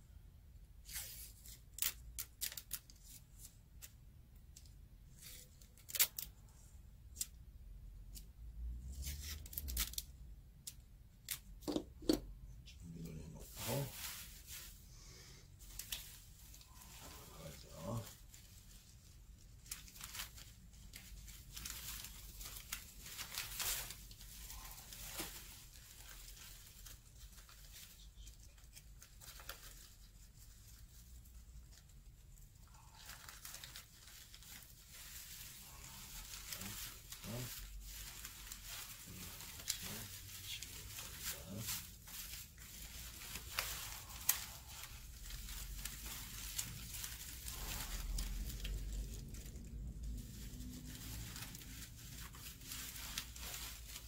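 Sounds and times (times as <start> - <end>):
paper strips rustling: 0.8 - 7.4, 8.0 - 12.2, 12.8 - 14.8, 15.5 - 54.0.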